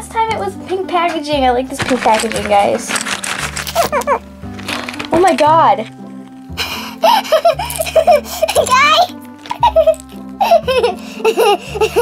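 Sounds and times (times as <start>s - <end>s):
background music: 0.0s - 12.0s
girl giggling: 3.8s - 4.2s, 7.0s - 12.0s.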